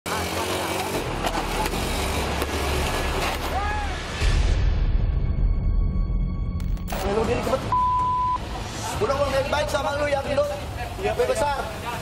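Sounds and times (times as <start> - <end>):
motorcycle engines running: 0.1 - 3.6.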